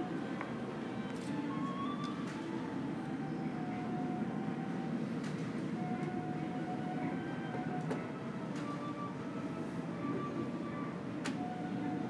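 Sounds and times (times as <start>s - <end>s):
low hum of terminal hall: 0.0s - 12.0s.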